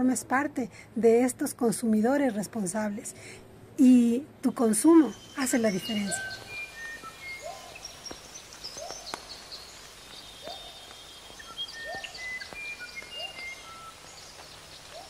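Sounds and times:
high bird chirps: 4.9s - 15.0s
thin bird whistles: 10.4s - 14.0s.

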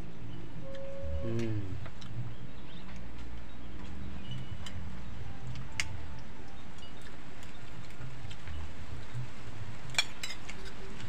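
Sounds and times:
spoons clinking on plates: 9.9s - 10.8s.

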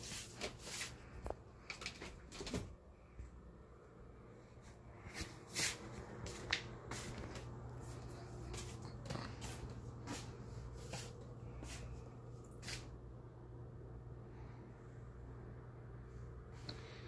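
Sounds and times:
low hum: 2.8s - 17.0s.

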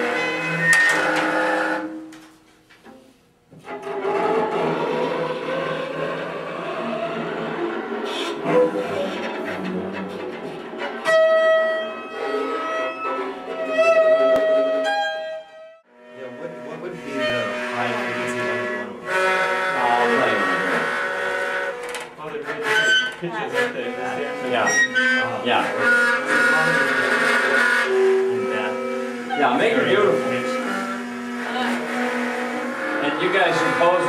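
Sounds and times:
string quartet bowing sustained notes: 0.0s - 34.0s
rough scraping noise: 2.9s - 11.2s, 16.2s - 34.0s
string and guitar ensemble: 3.8s - 15.4s, 32.6s - 34.0s.

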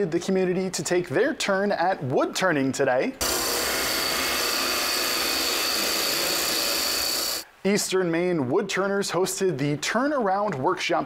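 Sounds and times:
high whine: 3.2s - 7.4s
wood lathe cutting hiss: 3.2s - 7.5s.

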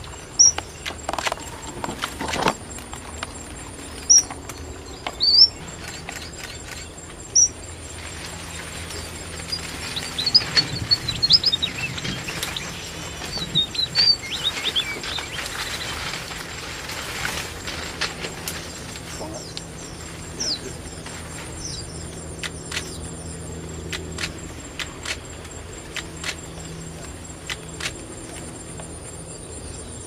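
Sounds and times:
finches chirping: 0.2s - 1.7s, 3.2s - 16.6s.

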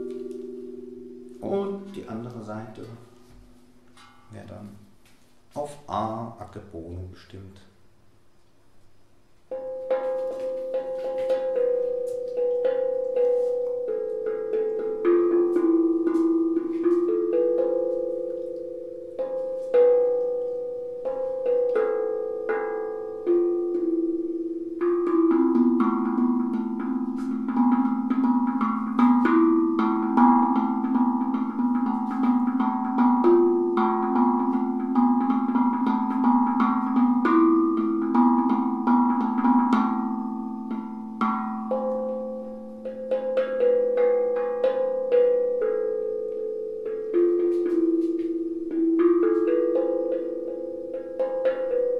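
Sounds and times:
steel tongue drum melody: 0.0s - 6.5s, 9.5s - 51.9s.

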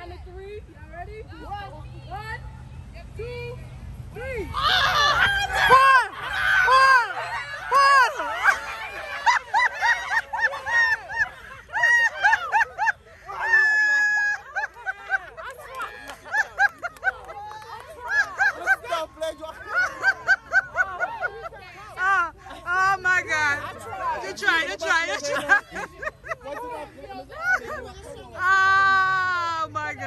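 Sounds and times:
people shouting and laughing: 0.0s - 30.0s.

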